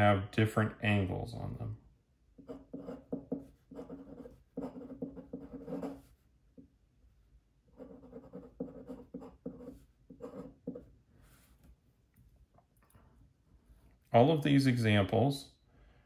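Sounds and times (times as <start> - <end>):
glass pen scratching on paper: 2.4 - 6.1, 7.8 - 10.9.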